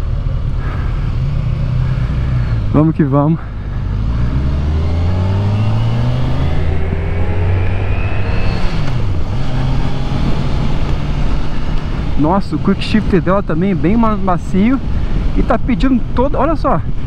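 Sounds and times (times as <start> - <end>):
motorcycle engine accelerating: 0.0 - 15.4.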